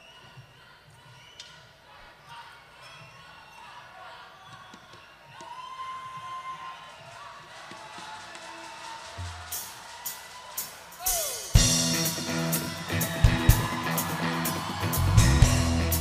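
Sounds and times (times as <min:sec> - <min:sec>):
faint stage and audience sounds: 0:00.0 - 0:16.0
band playing: 0:10.6 - 0:16.0.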